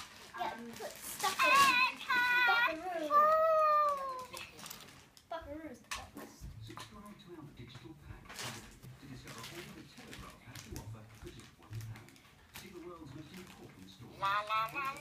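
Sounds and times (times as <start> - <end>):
toy babbling creature noises: 14.2 - 15.0.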